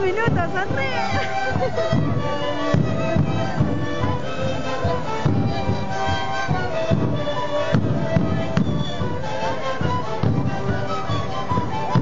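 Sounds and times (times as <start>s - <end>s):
large drum beats: 0.0s - 12.0s
panpipes playing held notes: 0.0s - 12.0s.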